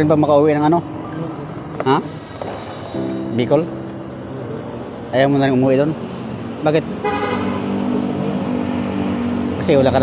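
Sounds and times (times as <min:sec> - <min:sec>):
road noise: 0:00.0 - 0:10.0
vehicle engine passing: 0:04.0 - 0:10.0.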